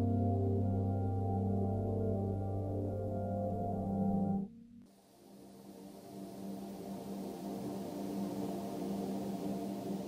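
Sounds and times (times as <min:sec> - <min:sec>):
ambient drone of held tones: 0:00.0 - 0:10.0.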